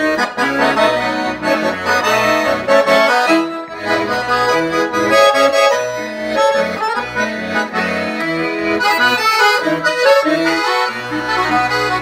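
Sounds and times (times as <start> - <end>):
piano accordion playing: 0.0 - 12.0.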